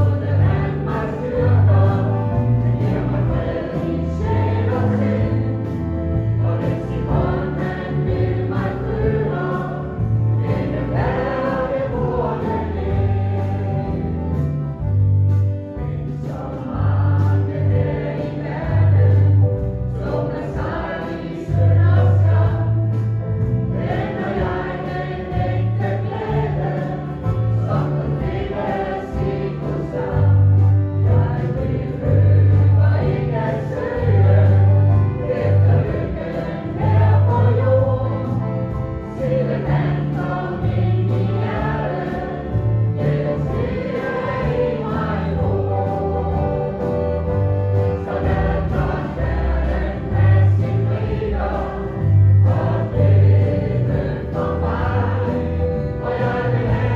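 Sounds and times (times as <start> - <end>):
choir singing gospel: 0.0 - 56.9
sustained bass line: 0.0 - 56.9.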